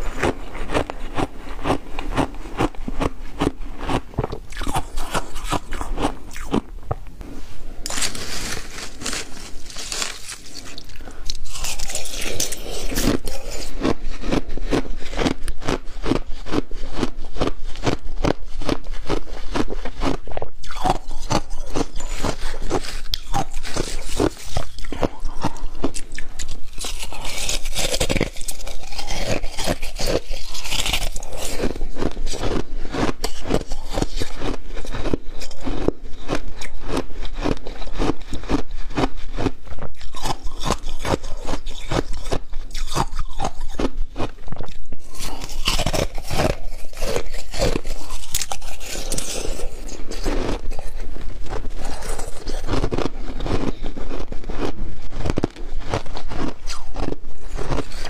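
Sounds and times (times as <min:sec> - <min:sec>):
crunching icy slush: 0:07.8 - 0:44.3, 0:45.0 - 0:58.0.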